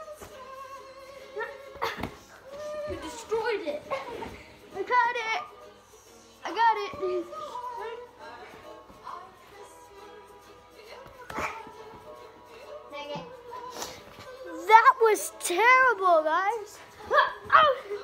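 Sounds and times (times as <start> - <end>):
faint background music: 0.0 - 18.0.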